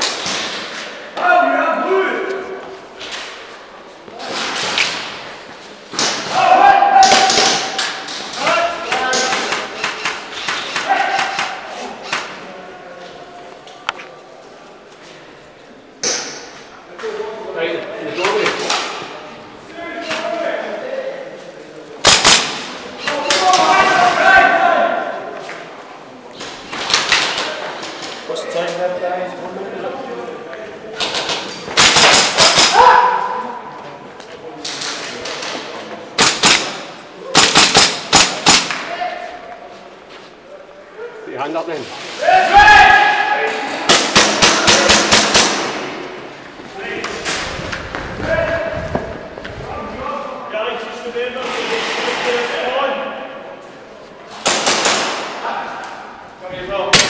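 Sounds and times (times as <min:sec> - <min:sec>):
airsoft guns firing: 0:22.0 - 0:24.1, 0:31.0 - 0:32.8, 0:36.2 - 0:38.9, 0:43.8 - 0:46.0, 0:54.4 - 0:55.4.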